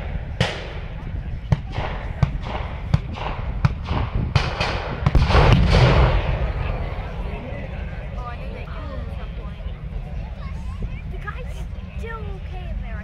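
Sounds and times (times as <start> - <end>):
blank gunshots: 0.0 - 0.9, 1.5 - 6.7
loud pyrotechnic blast: 0.0 - 7.3.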